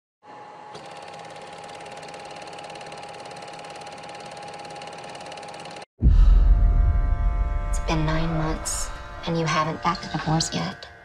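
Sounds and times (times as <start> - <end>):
film projector clatter: 0.7 - 5.9.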